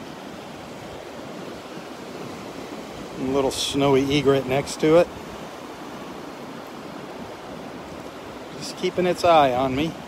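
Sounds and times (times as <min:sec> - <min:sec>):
gentle surf: 0:00.0 - 0:10.0.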